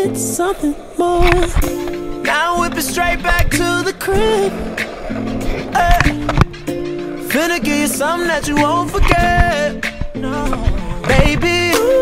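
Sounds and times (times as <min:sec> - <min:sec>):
r and b song with sung vocal: 0:00.0 - 0:05.0, 0:05.6 - 0:06.4, 0:07.2 - 0:12.0
skateboard clacking on pavement: 0:00.0 - 0:12.0.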